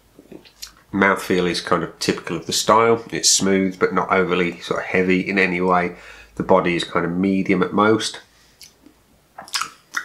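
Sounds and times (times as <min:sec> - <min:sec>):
man speaking: 0:00.4 - 0:08.3.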